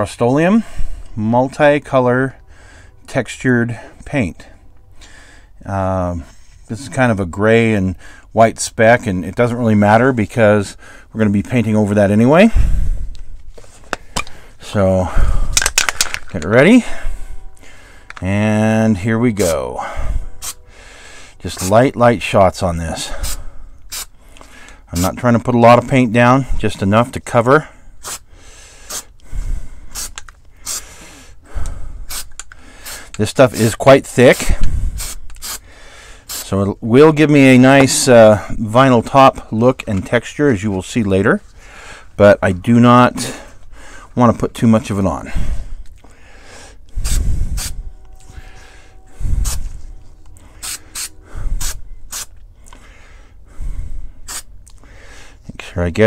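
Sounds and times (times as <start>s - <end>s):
spray paint can hissing: 23.2s - 24.1s, 29.9s - 30.8s, 32.1s - 33.1s, 35.0s - 35.6s, 36.3s - 36.5s, 50.6s - 52.3s, 54.3s - 54.5s.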